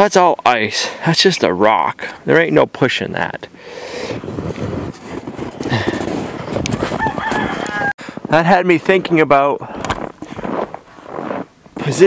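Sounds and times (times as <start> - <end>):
footsteps crunching through snow: 4.2 - 9.0, 9.7 - 12.0
rooster crowing: 6.7 - 8.0.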